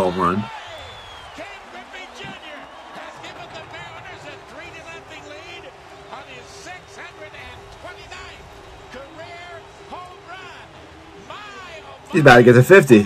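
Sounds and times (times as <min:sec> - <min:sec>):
sports commentary speech: 0:00.0 - 0:13.0.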